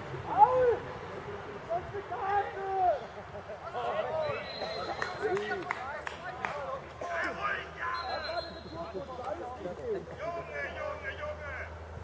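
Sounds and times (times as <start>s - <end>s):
outdoor background noise: 0.0s - 12.0s
distant shouts of footballers: 0.2s - 1.0s, 1.7s - 9.0s, 10.2s - 11.8s.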